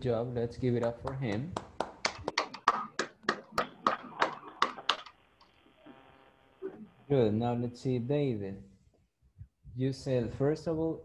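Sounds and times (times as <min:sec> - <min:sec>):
hand clapping: 0:00.7 - 0:05.2.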